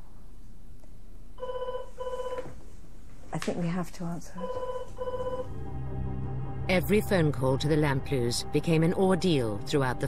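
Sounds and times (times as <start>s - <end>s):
telephone ringing: 4.4s - 5.5s.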